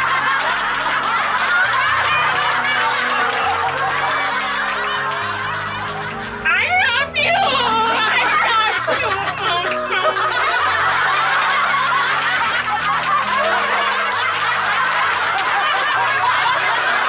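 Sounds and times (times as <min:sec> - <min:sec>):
background music with low notes: 0:00.0 - 0:17.0
women laughing and cheering: 0:00.0 - 0:17.0.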